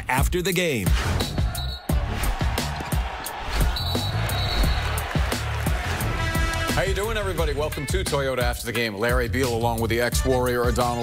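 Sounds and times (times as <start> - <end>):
theme music with punchy beat: 0.0 - 11.0.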